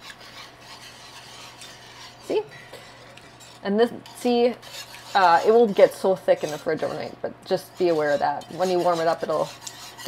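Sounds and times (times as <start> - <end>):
steady low hum: 0.0 - 10.0
whisk swishing and scraping: 0.0 - 10.0.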